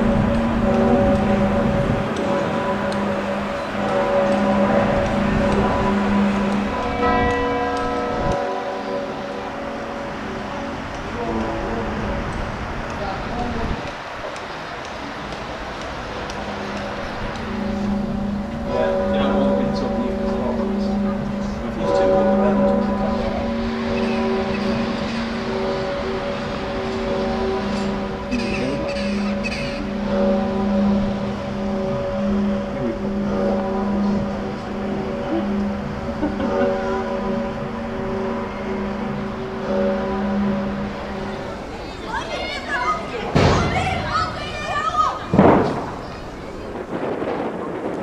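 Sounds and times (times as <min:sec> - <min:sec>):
church bells ringing: 0:00.0 - 0:48.0.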